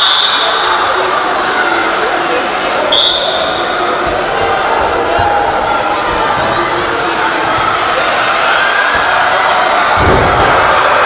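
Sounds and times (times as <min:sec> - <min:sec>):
referee's whistle: 0:00.0 - 0:00.7, 0:02.9 - 0:03.6
voices in a sports hall: 0:00.0 - 0:11.0.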